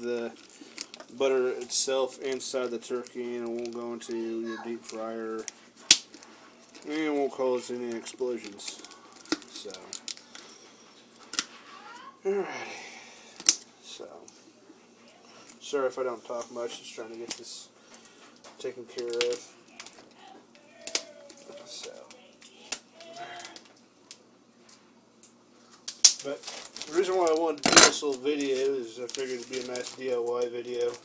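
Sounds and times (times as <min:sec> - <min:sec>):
plastic bag rustling: 0:00.0 - 0:12.0, 0:25.6 - 0:31.0
plastic crinkling: 0:00.0 - 0:12.0, 0:15.0 - 0:23.8, 0:25.6 - 0:31.0.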